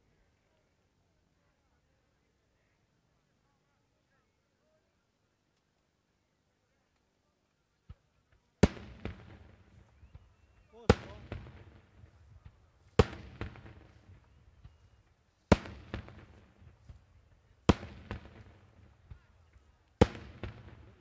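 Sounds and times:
small firework pops: 7.8s - 21.0s
fireworks bangs: 8.6s - 21.0s.

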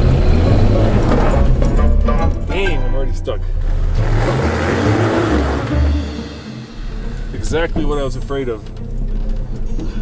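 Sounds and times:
truck engine revving: 0.0s - 2.5s, 3.4s - 8.2s
tires spinning on loose rock: 3.6s - 5.9s.

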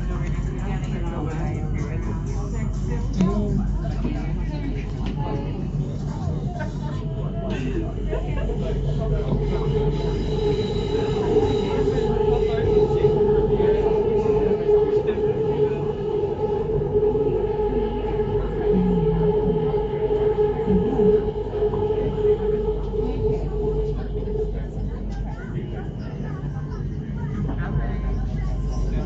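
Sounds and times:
train rumble: 0.0s - 29.0s
train whine: 0.0s - 29.0s.

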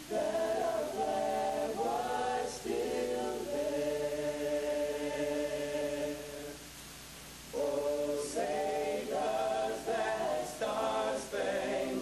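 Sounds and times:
choir singing long chords: 0.0s - 6.7s, 7.5s - 12.0s.

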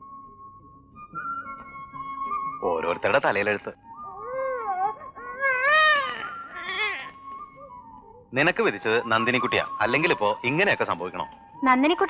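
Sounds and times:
baby crying: 4.0s - 7.2s.

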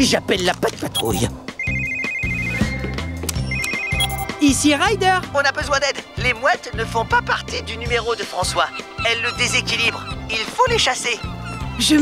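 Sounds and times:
background music: 0.0s - 12.0s
electronic trilling ringtone: 1.0s - 4.4s.

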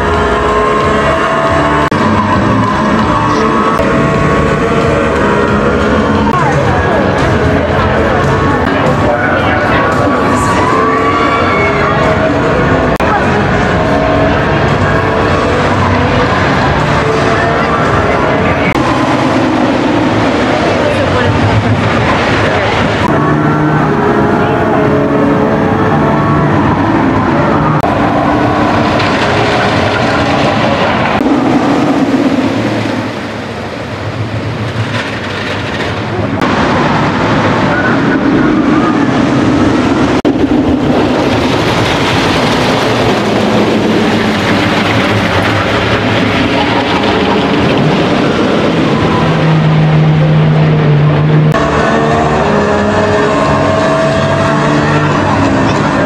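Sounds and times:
roller coaster rumbling on tracks: 0.0s - 56.0s
riders screaming: 8.4s - 14.9s.

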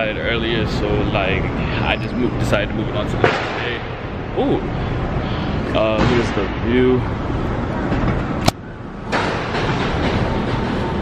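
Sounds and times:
rumble of passing vehicles: 0.0s - 11.0s.

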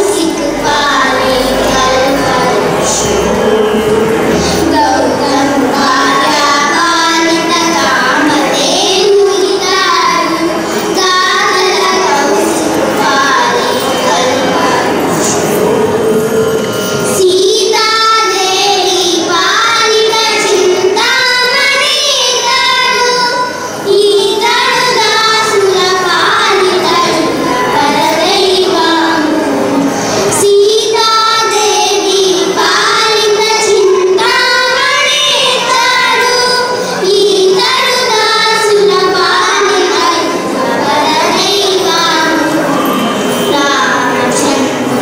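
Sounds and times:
girls singing into microphones: 0.0s - 45.0s.

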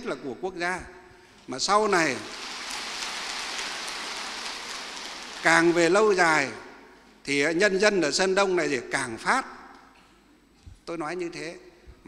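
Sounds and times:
speech: 0.0s - 0.9s, 1.5s - 2.2s, 5.4s - 9.5s, 10.9s - 11.7s
steady hiss: 1.1s - 7.1s.

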